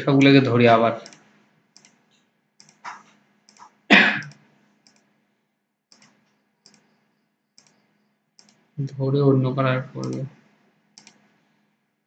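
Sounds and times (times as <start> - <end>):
computer mouse clicking: 1.0 - 5.1, 5.9 - 6.9, 7.6 - 9.0, 10.0 - 11.4.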